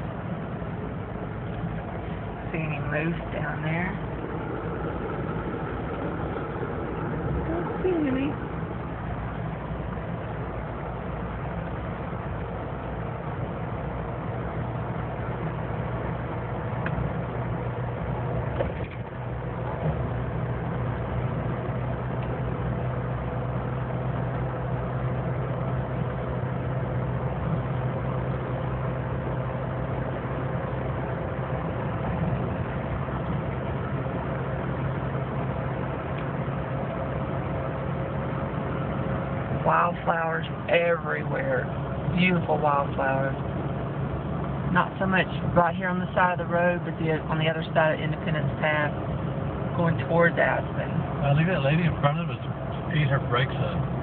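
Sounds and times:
car engine and road noise: 0:00.0 - 0:54.0.

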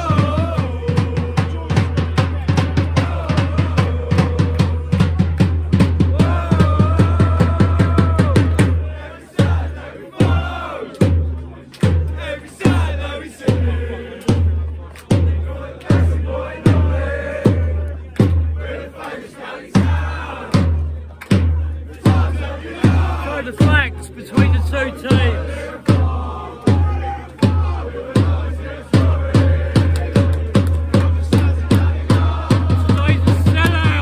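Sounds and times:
drum roll: 0:00.0 - 0:14.5, 0:19.7 - 0:34.0
bass drum beating steadily: 0:00.0 - 0:18.6, 0:19.7 - 0:34.0
supporters chanting: 0:00.0 - 0:34.0.

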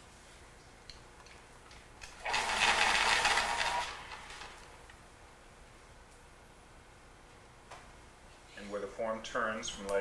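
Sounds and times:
scratchy whirring noise: 0:02.0 - 0:04.8.

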